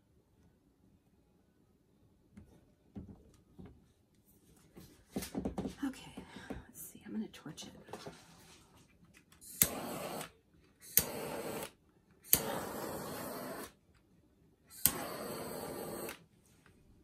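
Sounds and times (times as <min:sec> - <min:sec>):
torch ignition click: 0:09.4 - 0:13.7, 0:14.7 - 0:16.2
torch flame hissing: 0:09.4 - 0:13.8, 0:14.7 - 0:16.2.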